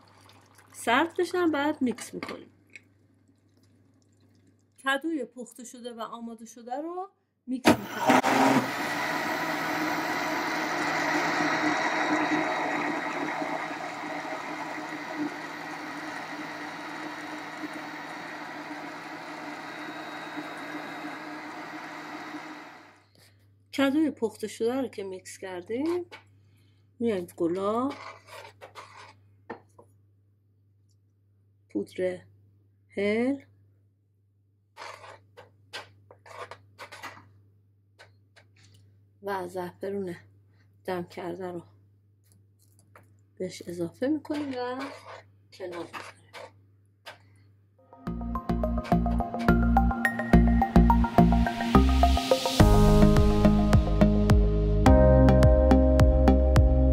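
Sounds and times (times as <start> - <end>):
electric blender running: 7.7 - 23.0
metal spoon scraping a saucepan: 27.7 - 29.2, 34.8 - 37.3, 44.3 - 47.3.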